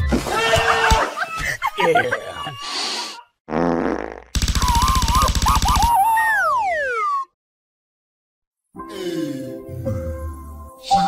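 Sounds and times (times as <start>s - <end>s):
cartoon falling whistle: 5.1s - 7.4s.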